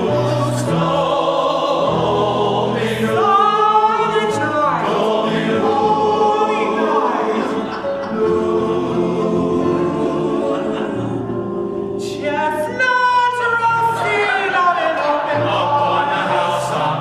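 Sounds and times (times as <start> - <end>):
men's chorus singing: 0.0 - 17.0.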